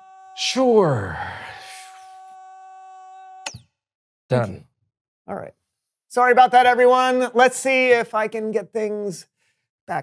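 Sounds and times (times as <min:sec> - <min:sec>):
electronic buzzing tone: 0:00.0 - 0:03.8.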